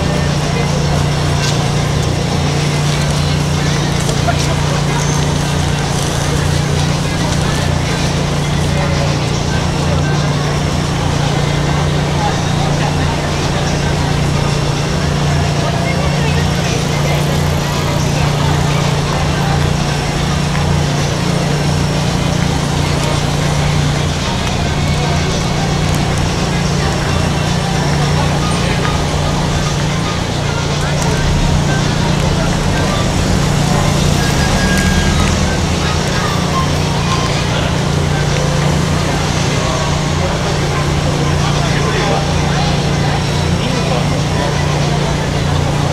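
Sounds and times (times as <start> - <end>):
crowd chatter: 0.0 - 45.9
traffic noise: 0.0 - 45.9.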